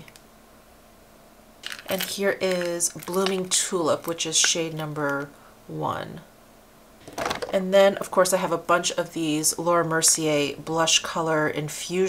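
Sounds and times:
handling plastic compacts: 0:01.6 - 0:03.5.

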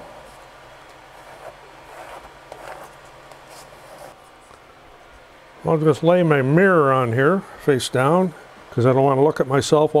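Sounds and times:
hand rubbing laminate sheet: 0:00.0 - 0:04.5
faint steady hum: 0:00.0 - 0:10.0.

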